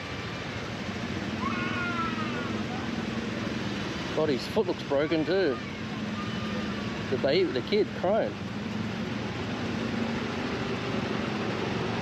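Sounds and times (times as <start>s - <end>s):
street traffic: 0.0s - 12.0s
child crying: 1.4s - 2.6s.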